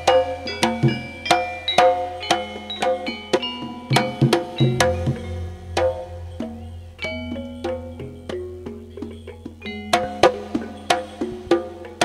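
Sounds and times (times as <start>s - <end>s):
struck gongs ringing: 0.0s - 11.4s
sharp drum strokes: 3.4s - 9.6s
sound system hum: 4.3s - 9.0s.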